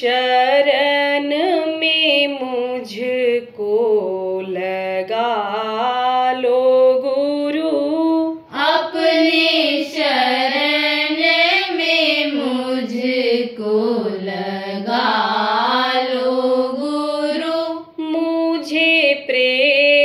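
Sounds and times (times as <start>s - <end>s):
person singing devotional chant: 0.0s - 20.0s.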